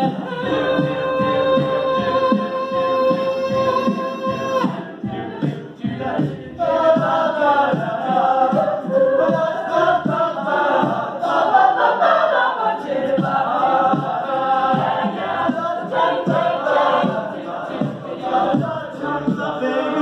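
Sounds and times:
vocal ensemble singing in harmony: 0.0 - 20.0.

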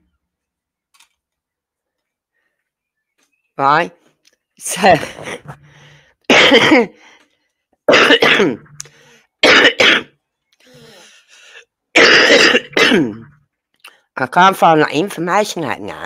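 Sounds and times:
woman laughing: 4.7 - 5.8
woman coughing hard: 6.3 - 7.0, 7.9 - 8.6, 9.4 - 10.2, 12.0 - 13.3.

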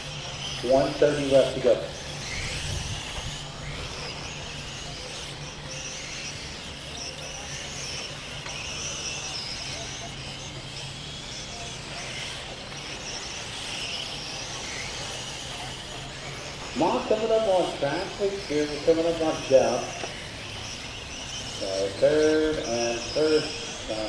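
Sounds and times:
rc car motors whining: 0.0 - 24.0
steady low hum: 0.0 - 24.0.

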